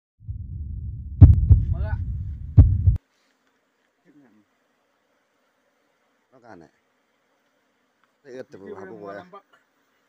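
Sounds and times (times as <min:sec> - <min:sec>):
deep heartbeat thumps: 0:00.2 - 0:03.0
low rumble: 0:00.2 - 0:03.0.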